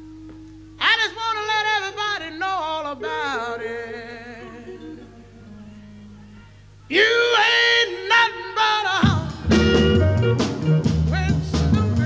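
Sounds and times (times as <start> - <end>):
music with singing voice: 0.1 - 12.0.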